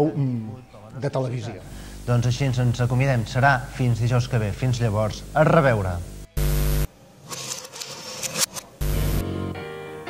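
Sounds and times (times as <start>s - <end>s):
buzzing static burst: 1.7s - 9.4s.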